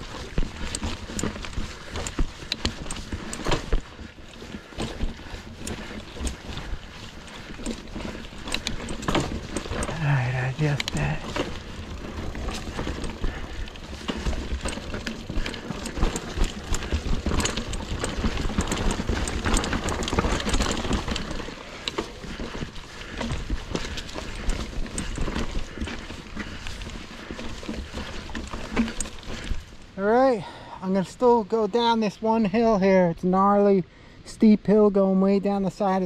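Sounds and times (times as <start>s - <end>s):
bike rattling over bumps: 0.0s - 32.8s
bike tyres rolling over dirt: 0.0s - 33.6s.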